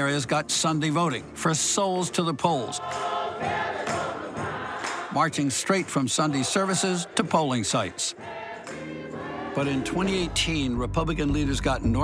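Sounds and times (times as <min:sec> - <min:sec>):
congregation singing gospel: 0:00.0 - 0:10.9
hand clapping: 0:03.8 - 0:07.5.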